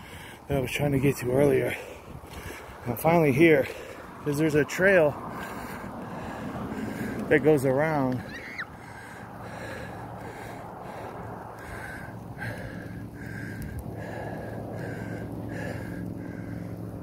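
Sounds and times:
cyclist breathing hard: 0.0s - 0.5s, 1.6s - 4.3s, 5.0s - 17.0s
bicycle tyres rumbling on asphalt: 0.0s - 17.0s.

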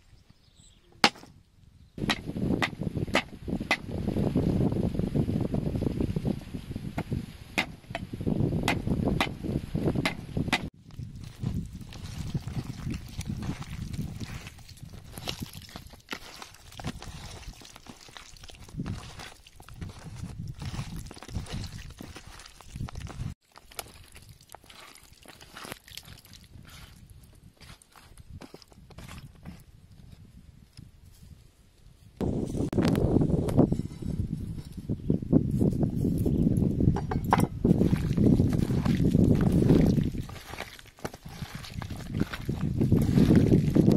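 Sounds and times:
hands squelching wet paste: 10.5s - 29.4s, 37.7s - 43.9s.

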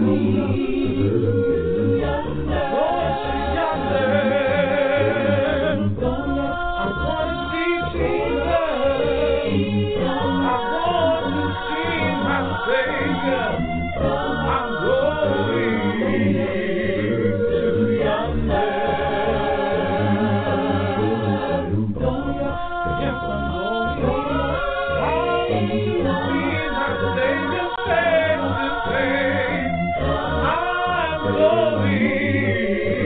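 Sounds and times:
a cappella vocal group singing: 0.0s - 33.0s.

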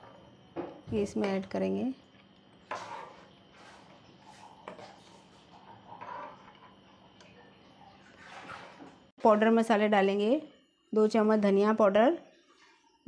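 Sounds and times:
soft wet mixing: 1.5s - 9.4s
spoon scraping metal pot: 2.6s - 6.8s.

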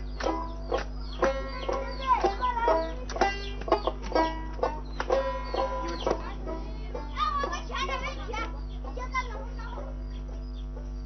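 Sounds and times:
plucked string notes ringing: 0.0s - 7.9s
chickens clucking: 0.0s - 11.0s.

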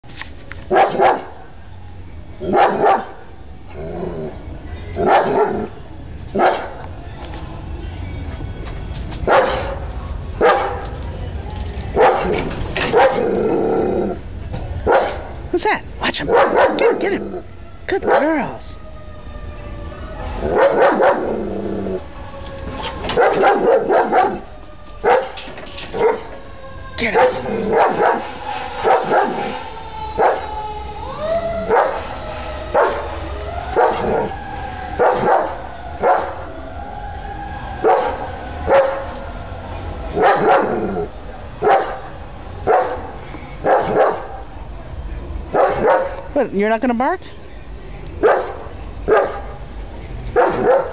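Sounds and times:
large dogs barking: 0.7s - 1.5s, 2.4s - 3.3s, 5.0s - 6.9s, 9.2s - 11.0s, 11.9s - 14.2s, 14.8s - 15.4s, 16.2s - 18.5s, 20.4s - 22.0s, 23.0s - 26.4s, 27.0s - 29.6s, 30.2s - 30.5s, 31.7s - 32.1s, 32.7s - 36.4s, 37.8s - 39.2s, 40.1s - 44.4s, 45.5s - 46.3s, 48.2s - 49.6s, 50.3s - 50.9s.

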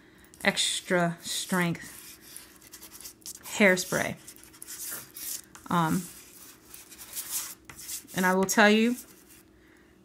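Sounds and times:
chalk pastel scratching paper: 0.8s - 9.4s.

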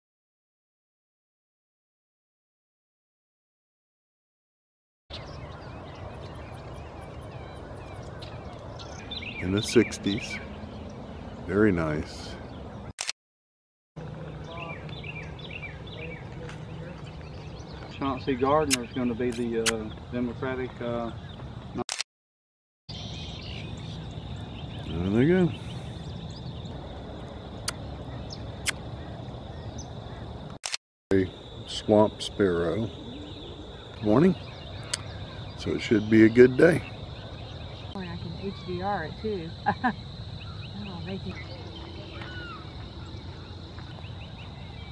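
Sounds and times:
birds chirping and calling: 5.1s - 12.9s, 14.0s - 21.8s, 22.9s - 44.9s
short sharp clicks: 18.7s - 19.8s
faint bird chirps: 31.1s - 44.9s.

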